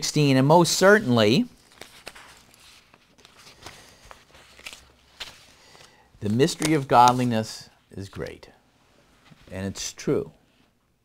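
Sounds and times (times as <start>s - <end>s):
paper sheets rustling: 1.3s - 8.4s, 9.2s - 9.8s.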